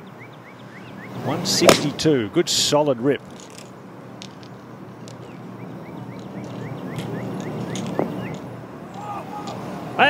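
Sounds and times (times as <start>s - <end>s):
bird chirping: 0.0s - 1.7s, 3.2s - 9.2s.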